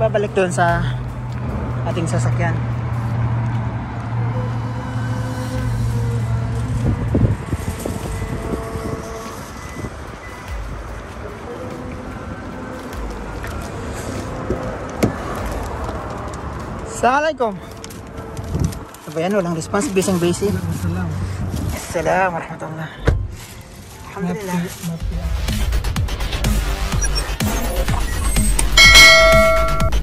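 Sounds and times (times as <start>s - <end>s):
background music: 0.0s - 19.7s, 23.3s - 30.0s
car park traffic noise: 0.0s - 22.2s, 26.6s - 30.0s
vehicle engine humming: 0.0s - 26.8s, 28.0s - 30.0s.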